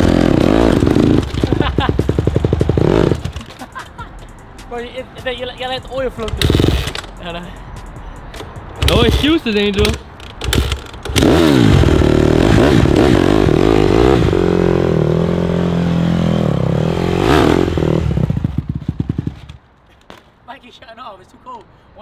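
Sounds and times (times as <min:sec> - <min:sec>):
dirt bike engine revving: 0:00.0 - 0:03.5, 0:06.4 - 0:07.0, 0:10.4 - 0:19.4.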